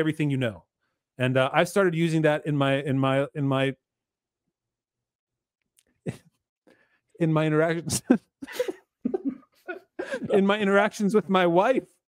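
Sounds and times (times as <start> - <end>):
faint breath: 6.7 - 7.1
man's stifled laugh: 7.9 - 10.6.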